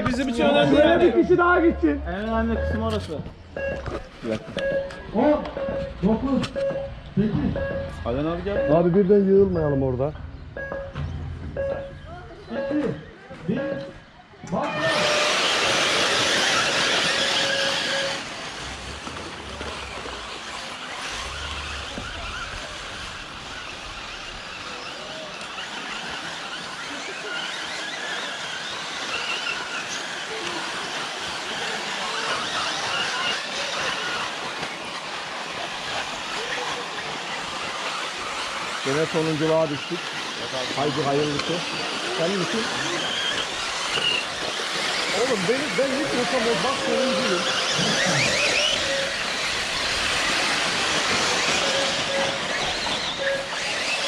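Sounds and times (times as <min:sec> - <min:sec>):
rc cars motors and tyres on dirt: 0:00.0 - 0:54.0.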